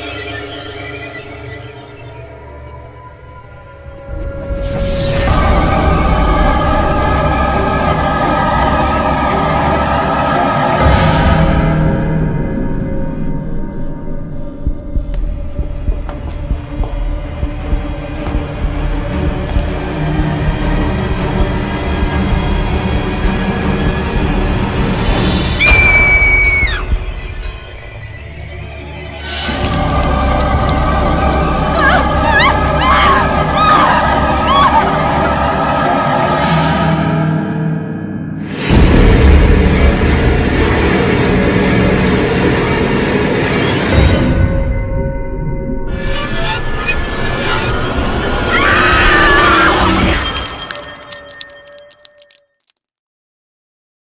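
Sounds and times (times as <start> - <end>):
low droning horror score: 0.0 - 51.6
film music: 0.0 - 52.8.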